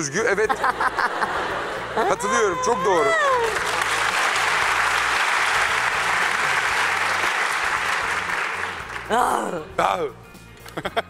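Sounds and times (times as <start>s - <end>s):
audience applauding: 1.2s - 9.1s
person laughing: 1.9s - 3.5s, 10.7s - 11.0s.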